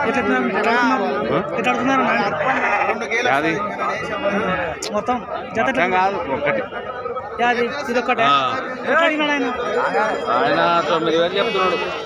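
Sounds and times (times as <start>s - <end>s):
men talking: 0.0s - 12.0s
sheep bleating: 2.1s - 3.1s, 3.9s - 4.6s, 11.1s - 12.0s.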